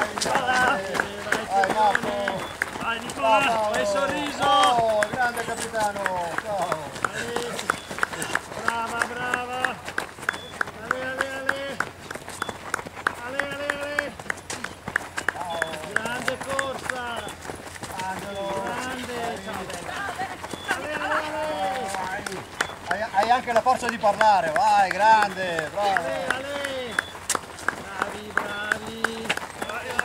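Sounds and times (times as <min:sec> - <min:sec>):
spectators shouting encouragement: 0:00.0 - 0:09.8, 0:18.0 - 0:27.0
footsteps on gravel: 0:00.0 - 0:30.0.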